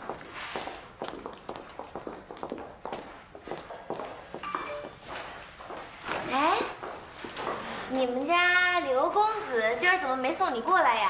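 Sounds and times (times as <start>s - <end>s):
footsteps on hard floor: 0.0s - 7.8s.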